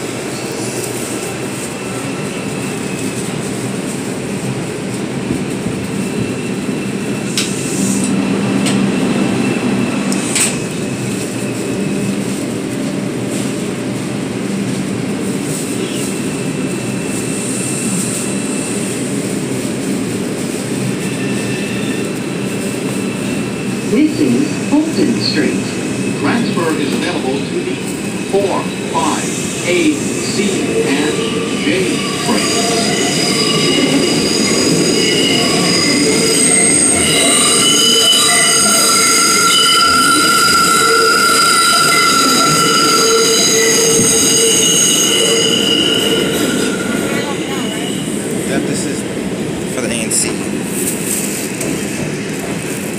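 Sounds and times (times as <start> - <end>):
subway train rumbling in tunnel: 0.0 - 52.9
steel wheels squealing on rails: 0.3 - 12.7, 15.2 - 49.0.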